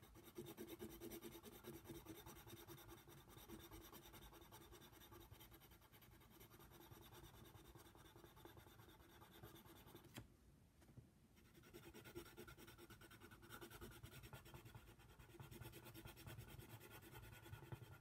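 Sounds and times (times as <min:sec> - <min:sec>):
pencil scratching on paper: 0:00.0 - 0:10.1, 0:11.4 - 0:18.0.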